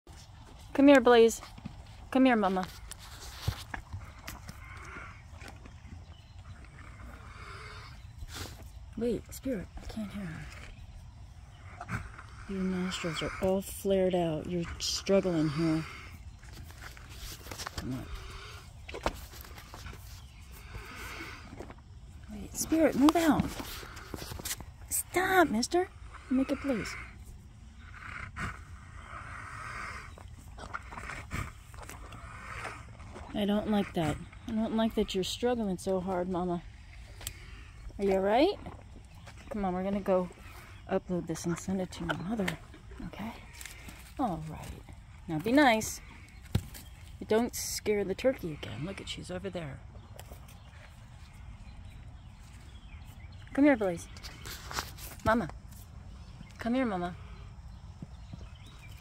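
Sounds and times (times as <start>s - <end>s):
horse breathing hard: 9.9s - 25.2s, 25.9s - 35.4s.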